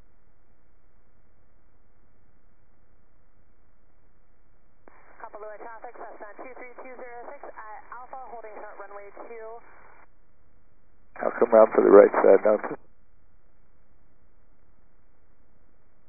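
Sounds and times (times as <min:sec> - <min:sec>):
radio voice transmission: 0:04.9 - 0:10.0, 0:11.2 - 0:12.8.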